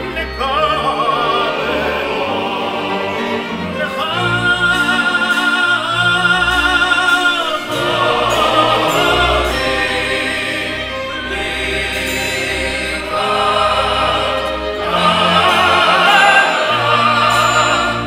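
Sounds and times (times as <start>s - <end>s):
male choir singing: 0.0s - 18.0s
operatic soloists singing: 0.0s - 18.0s
symphony orchestra: 0.0s - 18.0s.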